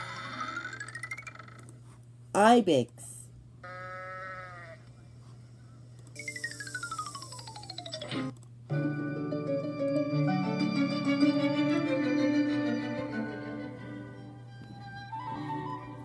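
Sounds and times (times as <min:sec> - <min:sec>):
goat-like bleat: 0:03.6 - 0:04.8
orchestral music with flute: 0:08.7 - 0:16.0.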